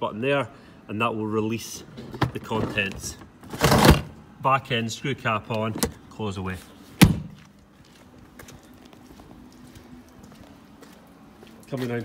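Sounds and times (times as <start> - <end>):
faint footsteps on gravel: 6.5 - 12.0.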